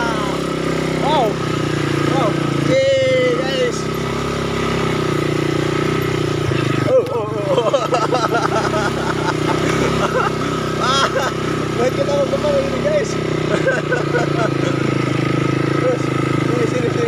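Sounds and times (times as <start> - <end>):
quad bike engine running: 0.0 - 17.0
voices calling out: 0.0 - 17.0.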